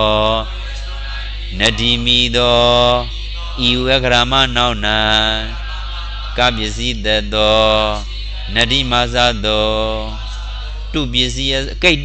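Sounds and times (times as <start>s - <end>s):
low electrical hum: 0.0s - 12.0s
man chanting: 0.0s - 12.0s.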